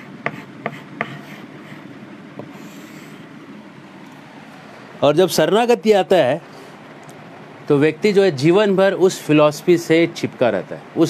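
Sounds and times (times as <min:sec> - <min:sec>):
chalk tapping on blackboard: 0:00.0 - 0:03.2
chalk scratching on blackboard: 0:00.0 - 0:03.3
steady background noise: 0:00.0 - 0:11.0.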